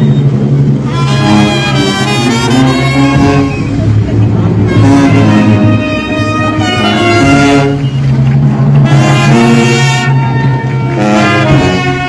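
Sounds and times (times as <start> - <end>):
brass band playing: 0.0 - 12.0
crowd voices: 0.0 - 12.0.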